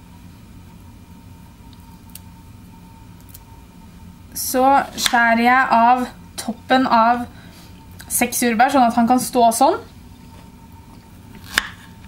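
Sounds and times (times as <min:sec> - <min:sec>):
quiet room hum: 0:00.0 - 0:12.0.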